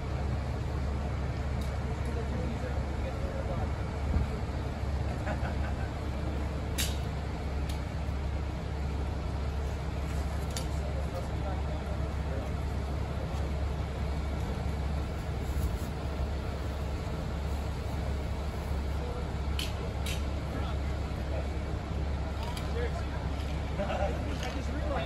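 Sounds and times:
diesel engines droning: 0:00.0 - 0:25.0.

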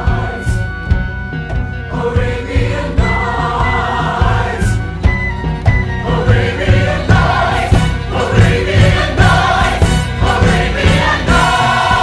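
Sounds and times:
ensemble chorus singing: 0:00.0 - 0:05.3, 0:05.9 - 0:12.0.

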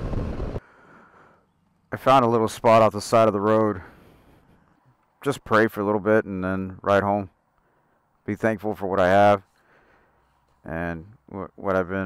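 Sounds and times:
motorcycle wind and road noise: 0:00.0 - 0:00.6.

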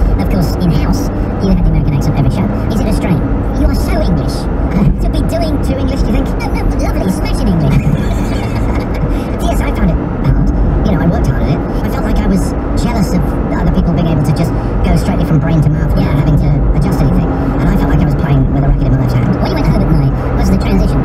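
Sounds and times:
engine and tyres rumbling: 0:00.0 - 0:21.0
radio voice talking: 0:04.2 - 0:12.4.

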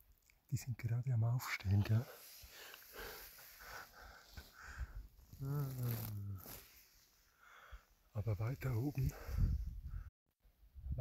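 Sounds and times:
breath noise: 0:01.9 - 0:08.1, 0:08.9 - 0:10.1
man humming: 0:05.3 - 0:06.6.

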